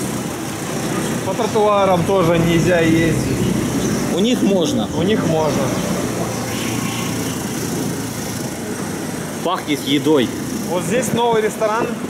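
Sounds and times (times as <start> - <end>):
motor scooter riding on street: 0.0 - 12.0.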